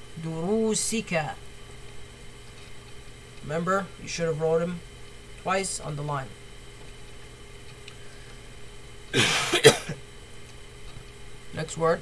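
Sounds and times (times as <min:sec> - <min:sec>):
faint steady hum: 0:00.0 - 0:12.0
person coughing: 0:09.1 - 0:10.0.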